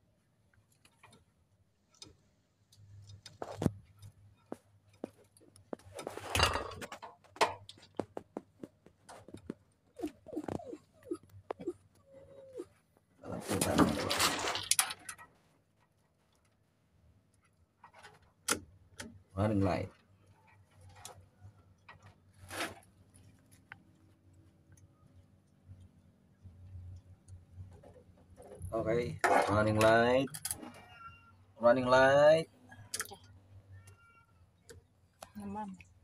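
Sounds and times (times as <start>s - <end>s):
wires rustling: 0.5s - 18.5s.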